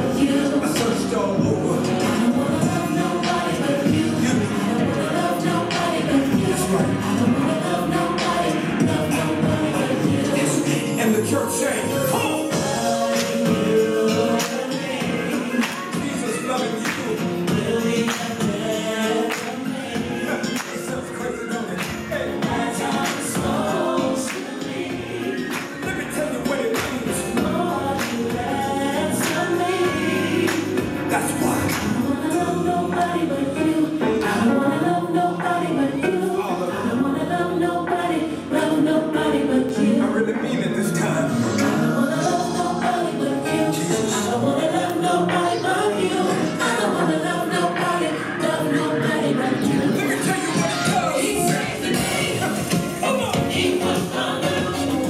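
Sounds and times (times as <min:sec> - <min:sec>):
gospel song with singing: 0:00.0 - 0:55.0.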